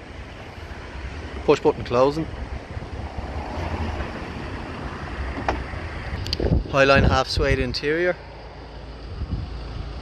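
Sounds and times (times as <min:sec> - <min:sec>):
wind on microphone: 0:02.3 - 0:07.8, 0:09.0 - 0:10.0.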